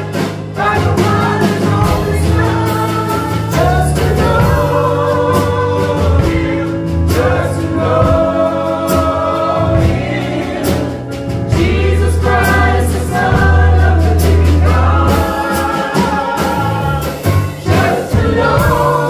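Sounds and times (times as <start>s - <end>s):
gospel choir singing: 0.0s - 19.0s
low bass notes: 0.0s - 19.0s.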